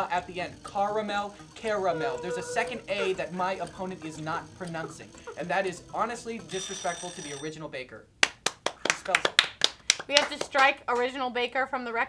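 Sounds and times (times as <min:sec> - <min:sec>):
hands clapping: 0:08.2 - 0:11.2.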